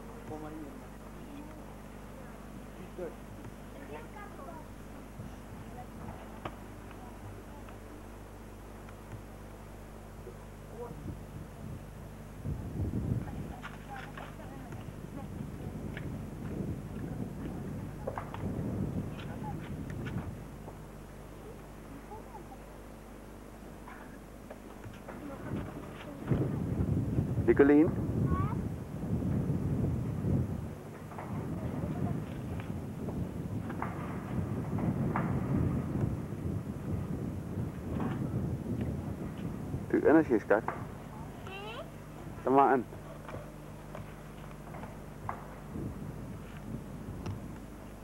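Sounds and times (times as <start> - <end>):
faint indistinct voices: 0.0 - 11.6, 13.2 - 26.9
steady low rumbling: 0.0 - 48.0.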